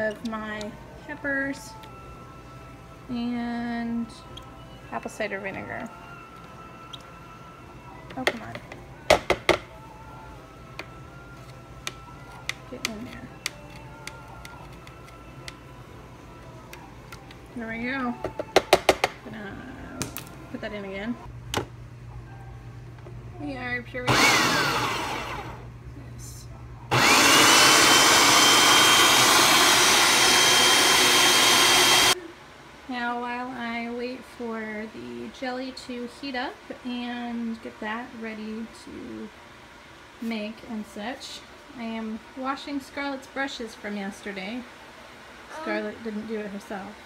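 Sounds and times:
food processor chopping: 24.1s - 25.6s, 26.9s - 32.2s
food processor motor whine: 24.1s - 25.6s, 26.9s - 32.2s.

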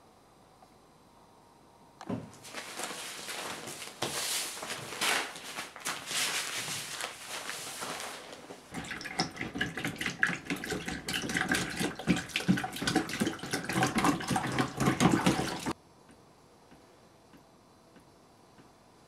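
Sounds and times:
faint hum: 0.0s - 9.8s
water splashing and sloshing: 2.4s - 15.8s.

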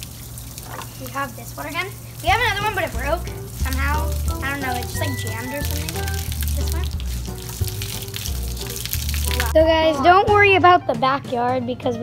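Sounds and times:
crackling hiss: 0.0s - 9.6s
background music with bass line: 2.3s - 12.0s.

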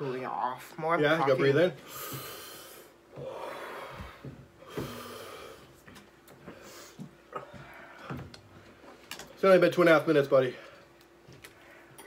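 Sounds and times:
person breathing hard: 1.8s - 5.8s, 6.4s - 8.9s.

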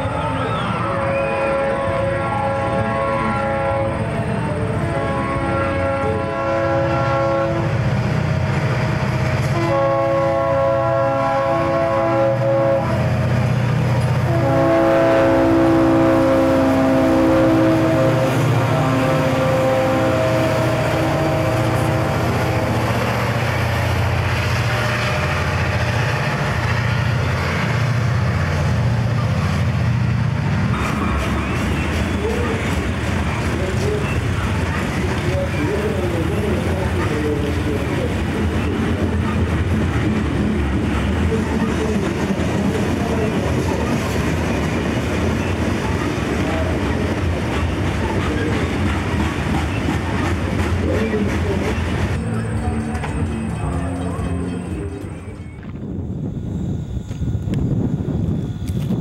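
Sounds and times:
diesel locomotive engines rumbling: 0.0s - 59.0s
locomotive air horn: 0.1s - 7.8s, 9.4s - 13.1s, 14.2s - 23.0s.

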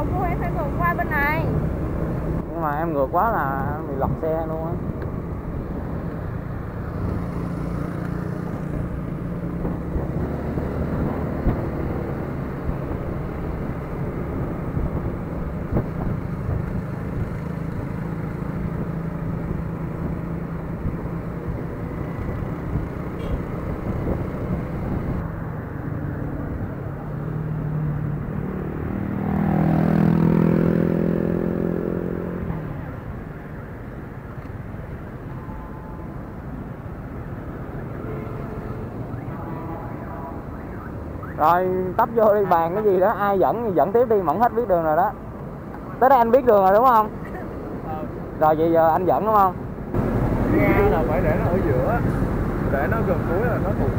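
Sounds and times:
wind noise on microphone: 14.4s - 16.7s, 22.2s - 25.2s
louder passing engine: 27.4s - 32.8s, 49.4s - 53.9s.

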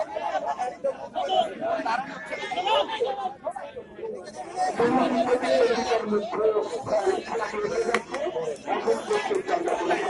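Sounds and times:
crowd chattering: 0.0s - 10.0s.

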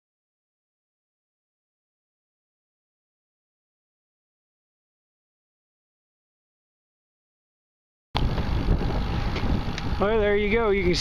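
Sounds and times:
wind buffeting microphone: 8.2s - 11.0s.

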